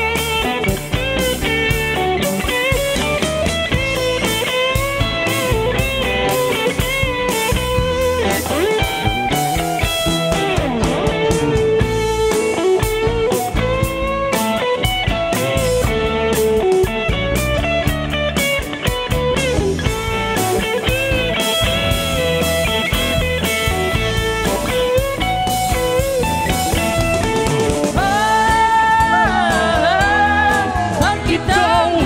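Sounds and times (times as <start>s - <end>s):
bass guitar: 0.0s - 32.0s
drum kit steady beat: 0.0s - 32.0s
electric guitar bending notes: 0.0s - 32.0s.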